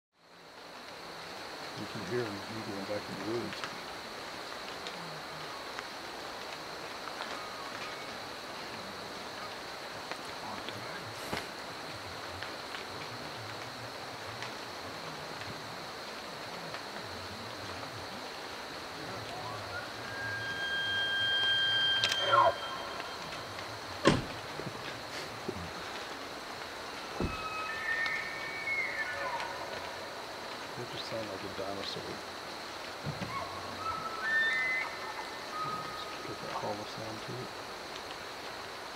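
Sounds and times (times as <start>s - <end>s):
steady hiss: 0.2s - 38.9s
elk bugling: 18.9s - 25.9s, 27.1s - 30.2s.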